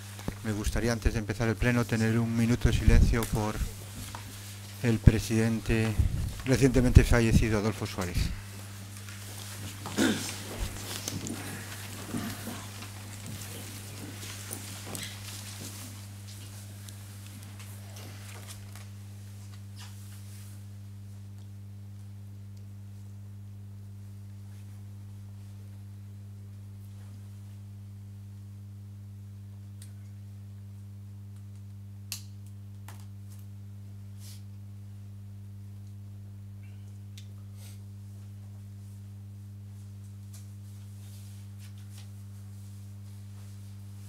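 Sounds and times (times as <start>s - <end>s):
steady low hum: 0.0s - 44.0s
chairs shifting: 9.2s - 16.0s.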